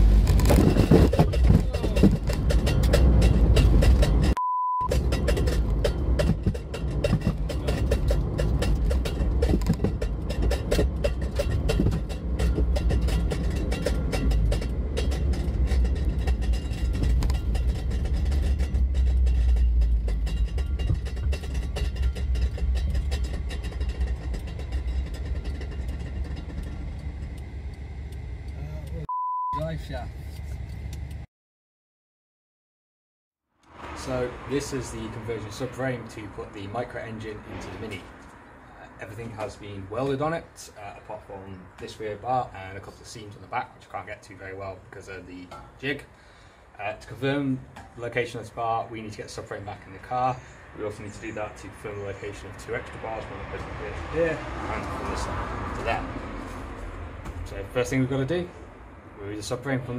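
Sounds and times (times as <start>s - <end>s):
car engine and road rumble: 0.0s - 31.3s, 33.6s - 59.9s
short beep: 4.4s - 4.9s, 29.1s - 29.6s.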